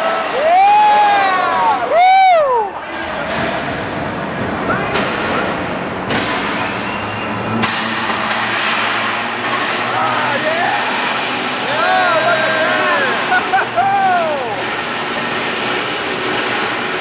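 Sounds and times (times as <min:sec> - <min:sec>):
spectators shouting and whooping: 0:00.0 - 0:02.9, 0:11.6 - 0:14.7.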